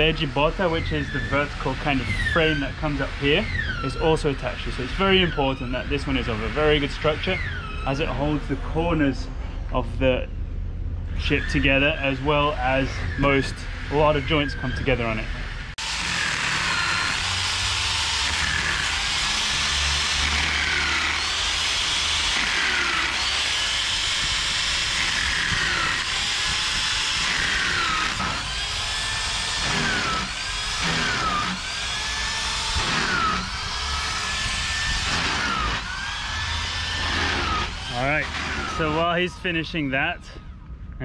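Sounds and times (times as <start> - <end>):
electric drill boring into wood: 0.0 - 8.2, 15.8 - 39.3.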